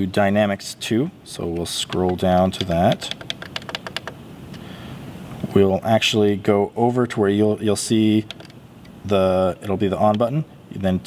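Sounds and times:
mixing console controls clicking: 1.4s - 4.6s, 8.2s - 9.0s.

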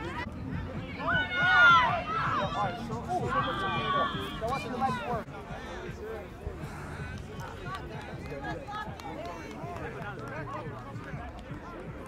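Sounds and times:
people chattering and calling: 0.0s - 12.0s.

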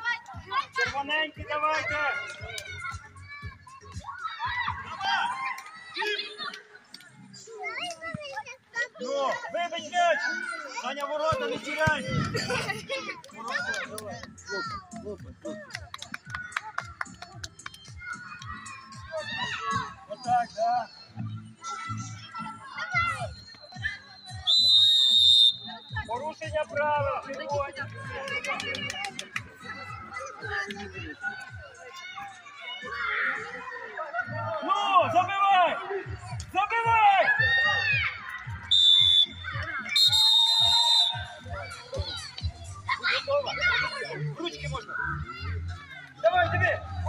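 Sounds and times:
background music: 0.0s - 47.0s
children shouting: 1.6s - 6.5s, 17.9s - 20.1s, 29.7s - 35.8s, 36.6s - 44.3s
sports whistle blast: 24.4s - 25.9s, 38.7s - 39.4s, 40.0s - 41.3s
children's voices: 41.3s - 46.2s.

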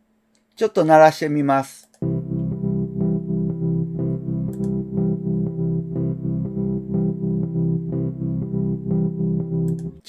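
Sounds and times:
electric piano chords: 2.0s - 10.0s.

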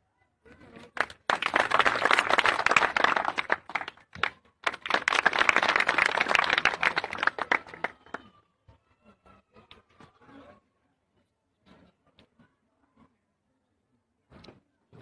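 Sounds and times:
people clapping: 0.7s - 8.3s.

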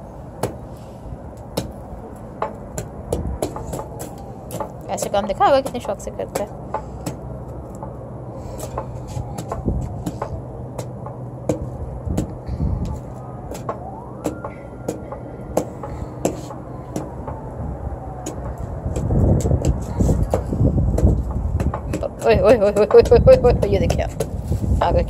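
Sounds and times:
gusty rumble of blowing air: 0.0s - 25.0s
rising whine: 7.2s - 21.8s.

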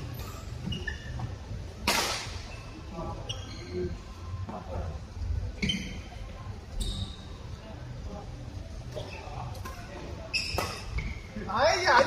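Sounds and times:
high ringing squeak: 6.8s - 7.3s.

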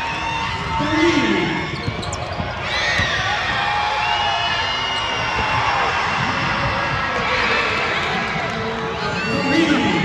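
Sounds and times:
basketball bouncing on hardwood: 1.5s - 3.7s.

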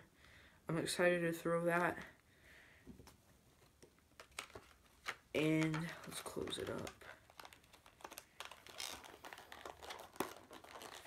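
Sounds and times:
plastic packaging crinkling: 4.0s - 11.0s.

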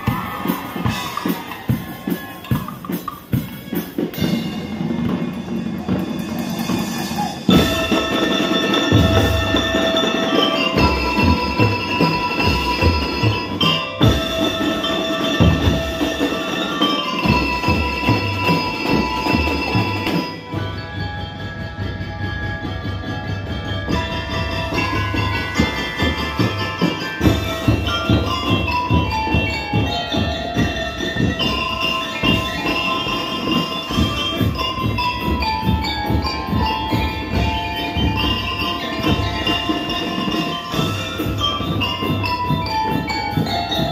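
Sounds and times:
mallet bells melody: 0.0s - 43.9s
marching bass drums: 0.0s - 43.9s.

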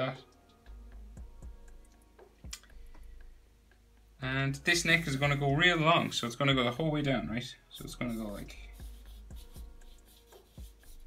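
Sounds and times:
quiet background music: 0.0s - 11.0s
marker pen scratching paper: 7.8s - 11.0s.

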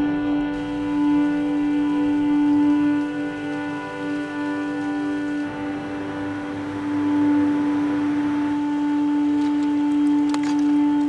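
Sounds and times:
low droning note: 0.0s - 11.0s
rushing noise: 0.5s - 11.0s.

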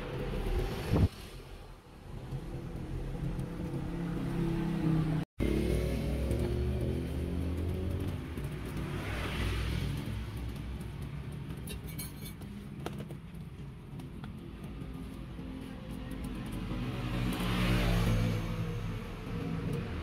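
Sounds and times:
vehicle engines passing: 0.0s - 20.0s.

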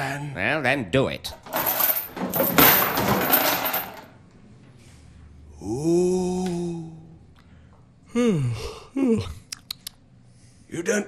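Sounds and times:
metal chain jangling: 1.3s - 4.1s.

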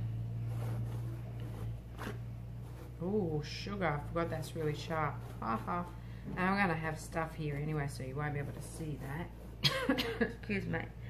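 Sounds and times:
steady low hum: 0.0s - 11.0s
paintbrush scratching on resin: 0.3s - 6.0s, 6.6s - 9.6s.

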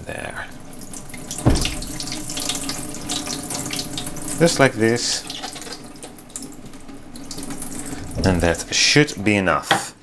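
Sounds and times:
water trickling through pot: 0.1s - 9.4s.

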